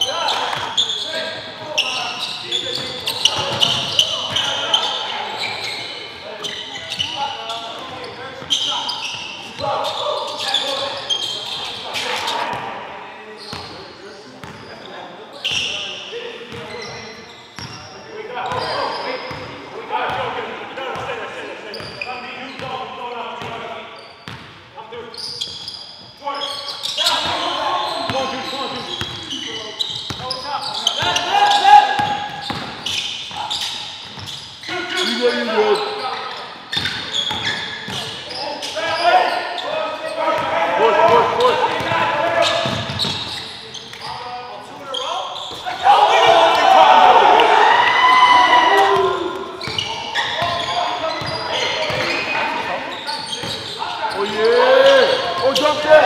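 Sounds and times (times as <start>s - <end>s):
indistinct shouting: 45.7s - 49.4s.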